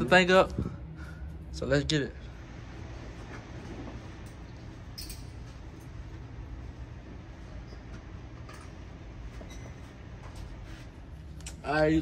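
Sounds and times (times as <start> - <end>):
low hum of range machinery: 0.0 - 12.0.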